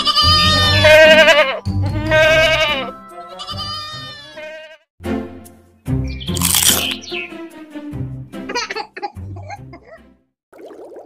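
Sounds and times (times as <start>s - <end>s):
goats bleating: 0.0s - 4.8s.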